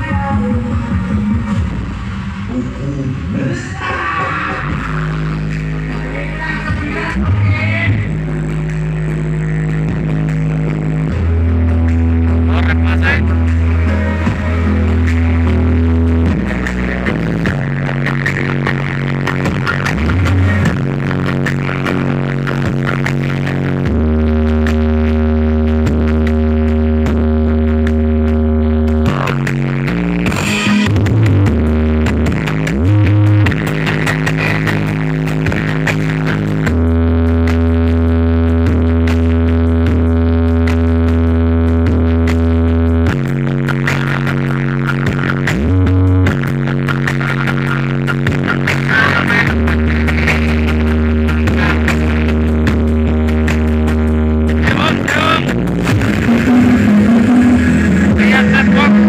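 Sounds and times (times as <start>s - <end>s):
loud electronic dance music: 0.0s - 59.0s.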